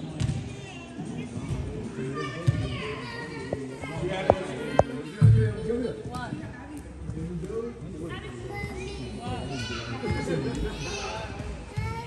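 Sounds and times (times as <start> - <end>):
players' voices and calls: 0.0 - 12.0.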